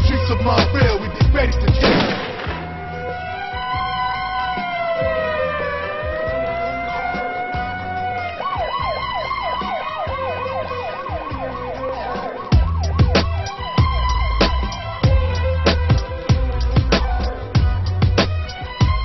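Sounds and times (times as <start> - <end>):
heavy drum beat with deep kicks: 0.0 - 2.2, 12.5 - 19.0
police siren wailing and yelping: 0.0 - 17.7, 18.3 - 19.0.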